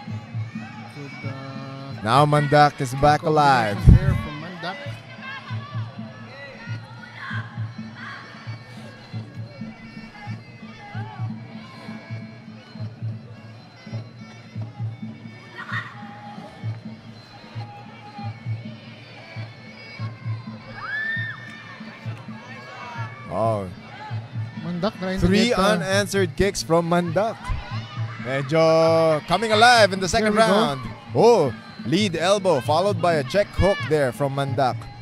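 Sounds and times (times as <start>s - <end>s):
crowd voices and shouts: 0.0s - 35.0s
drum beat: 2.0s - 4.4s, 24.2s - 28.6s, 29.2s - 35.0s.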